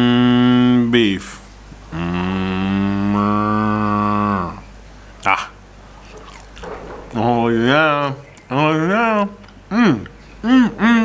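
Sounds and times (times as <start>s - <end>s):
man humming mmm: 0.0s - 1.0s, 1.9s - 5.6s, 9.7s - 11.0s.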